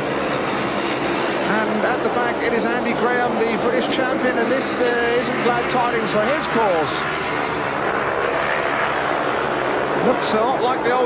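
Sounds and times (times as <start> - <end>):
motorcycle engines running flat out: 0.0 - 11.0.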